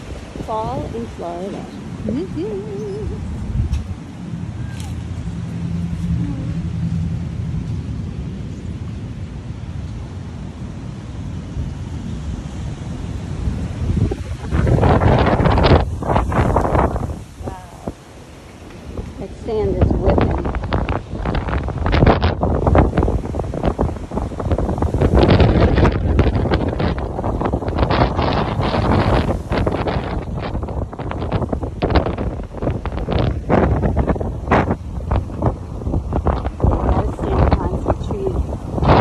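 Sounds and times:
rough surf: 0.0s - 39.0s
wind buffeting microphone: 0.0s - 39.0s.

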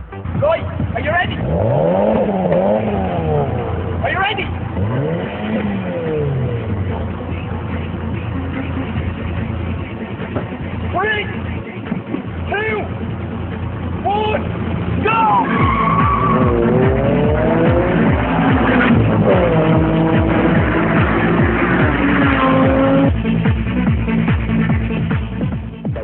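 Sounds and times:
car engines revving: 0.0s - 26.0s
cars accelerating hard: 0.6s - 25.1s.

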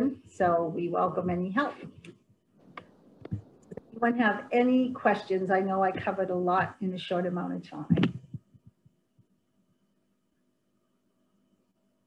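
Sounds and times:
woman's voice: 0.0s - 2.1s, 4.0s - 8.2s
faint steady hum: 0.0s - 12.0s.

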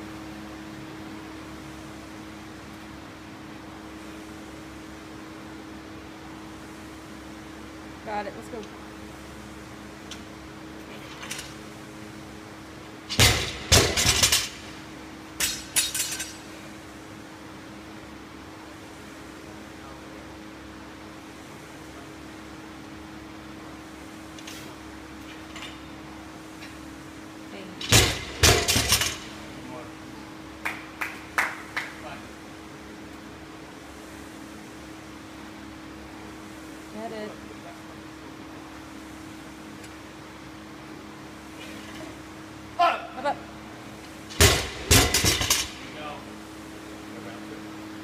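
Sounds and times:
steady low hum: 0.0s - 48.0s
barbell dropped on concrete: 13.1s - 14.6s, 27.8s - 29.3s, 44.3s - 45.8s.

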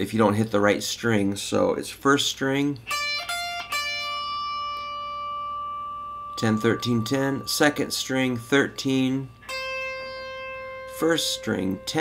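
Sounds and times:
electric guitar picked notes: 2.8s - 12.0s.

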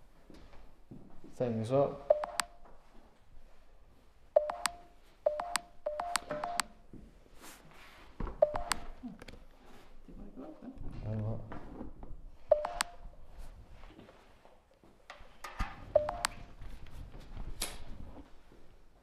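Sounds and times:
electronic chirps from gadget: 4.4s - 6.6s.

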